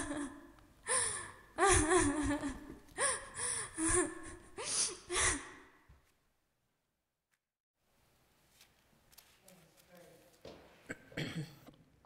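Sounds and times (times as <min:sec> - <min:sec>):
person sobbing: 0:00.0 - 0:05.7.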